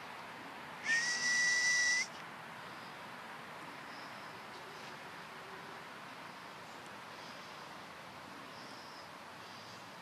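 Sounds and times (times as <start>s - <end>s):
whistle blown: 0.8s - 2.1s.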